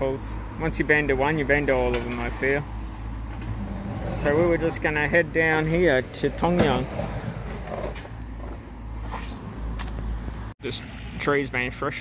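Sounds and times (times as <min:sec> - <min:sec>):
low engine rumble: 0:00.0 - 0:11.9.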